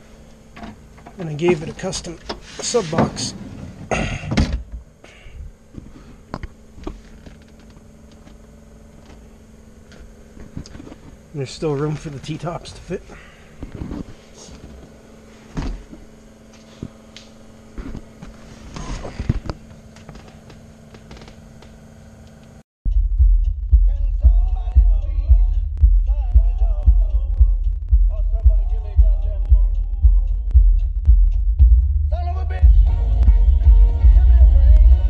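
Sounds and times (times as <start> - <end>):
steady low hum: 0.0 - 35.0
song with heavy bass: 22.9 - 35.0.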